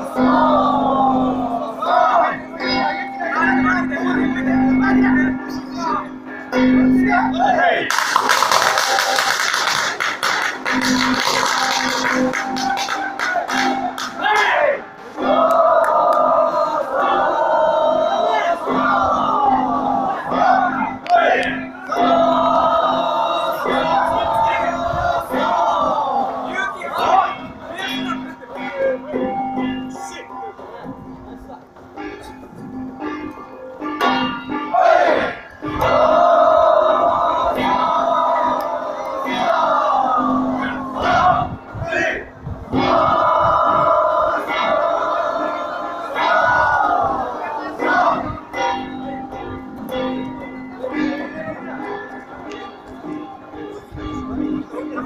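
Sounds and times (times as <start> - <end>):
group shouting chants: 0.0 - 4.4, 13.0 - 28.3, 34.7 - 48.6.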